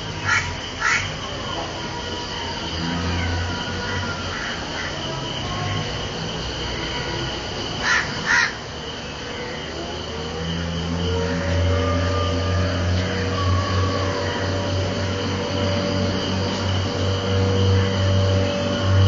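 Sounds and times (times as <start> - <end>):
steady low hum: 0.0 - 19.0
crow cawing: 0.2 - 1.2, 7.8 - 8.6
drawn-out squealing tones: 9.1 - 19.0.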